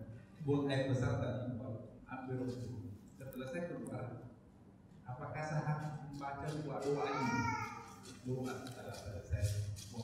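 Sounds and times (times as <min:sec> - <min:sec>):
man speaking: 0:00.0 - 0:04.2, 0:05.1 - 0:10.0.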